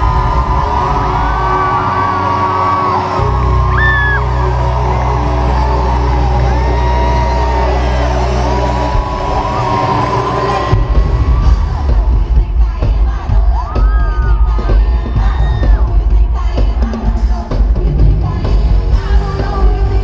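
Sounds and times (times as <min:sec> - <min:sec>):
crowd screaming and cheering: 0:00.0 - 0:20.0
pounding bass beat: 0:00.0 - 0:20.0.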